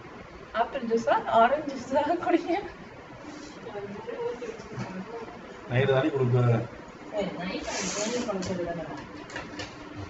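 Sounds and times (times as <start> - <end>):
short hiss: 7.6 - 8.4.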